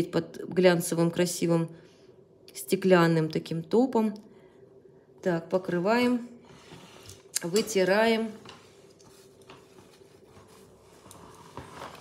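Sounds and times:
paper napkin rustling: 7.9s - 12.0s.

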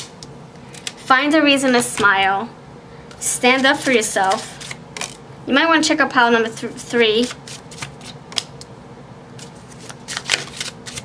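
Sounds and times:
paper cards rustling: 3.4s - 5.2s, 6.6s - 8.5s, 9.4s - 11.0s.

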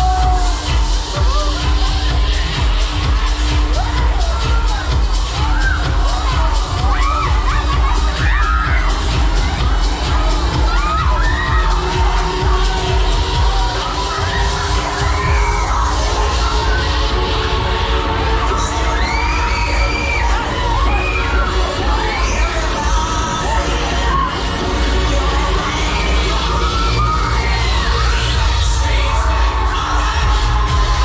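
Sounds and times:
riders screaming and shouting: 0.0s - 17.6s, 18.3s - 31.0s
ride music with heavy bass beat: 0.0s - 31.0s.

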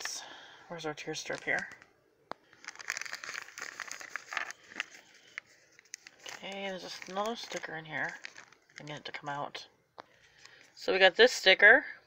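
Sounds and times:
foil packet crinkling: 1.2s - 9.2s, 10.2s - 10.8s.

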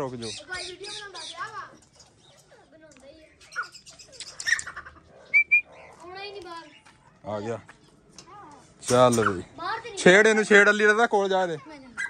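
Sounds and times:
high whistled notes: 5.3s - 5.7s
wire cage door rattling: 8.8s - 9.4s.

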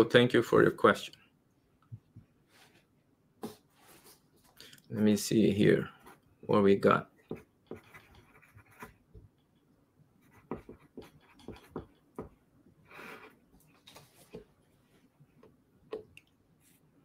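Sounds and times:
soft rustle: 2.4s - 5.2s, 13.5s - 15.3s, 16.6s - 17.0s.

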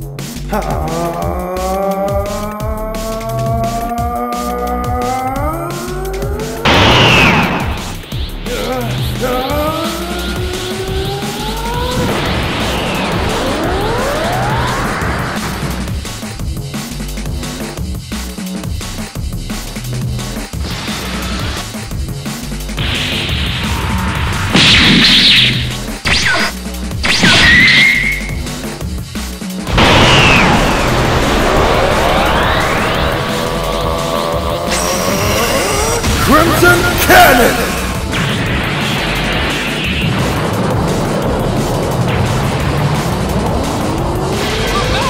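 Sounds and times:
electronic background music: 0.0s - 45.0s
energy beam blast rush: 5.3s - 16.3s, 22.8s - 28.6s, 29.6s - 45.0s
rising tone: 9.3s - 16.0s, 29.7s - 36.6s
falling whistly tones: 27.2s - 28.4s
loud smashing impact: 29.7s - 33.3s.

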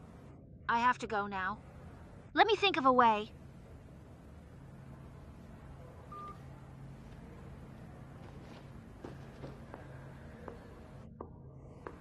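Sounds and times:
faint low hum: 0.0s - 12.0s
smartphone beep: 6.1s - 6.4s.

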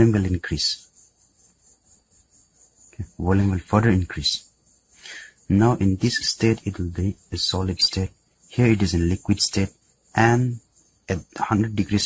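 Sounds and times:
faint high-pitched background sound: 0.0s - 12.0s.

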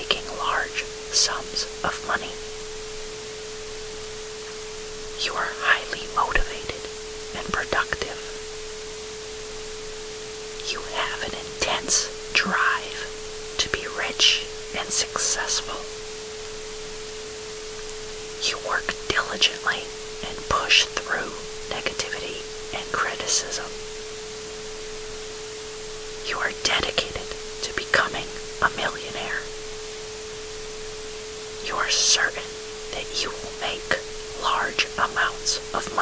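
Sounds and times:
person whispering: 0.0s - 2.5s, 5.2s - 8.4s, 10.6s - 15.9s, 18.4s - 23.8s, 26.2s - 29.5s, 31.6s - 36.0s
constant wash of noise: 0.0s - 36.0s
steady pure tone: 0.0s - 36.0s.

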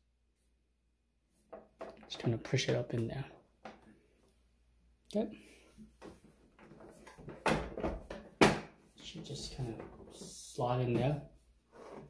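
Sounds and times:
plastic parts scraping and knocking: 5.9s - 12.0s.

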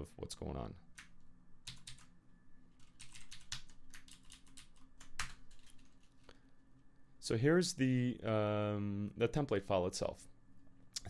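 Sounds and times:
computer keyboard typing: 0.9s - 2.1s, 2.7s - 6.3s.

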